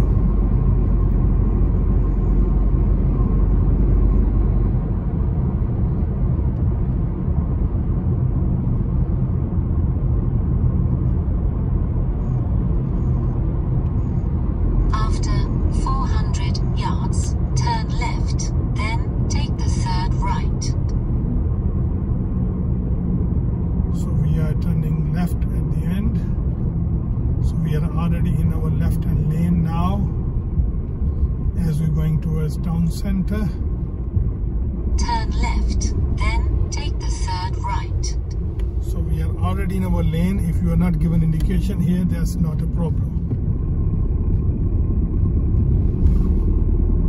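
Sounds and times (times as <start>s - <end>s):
car engine and tyre rumble: 0.0s - 47.0s.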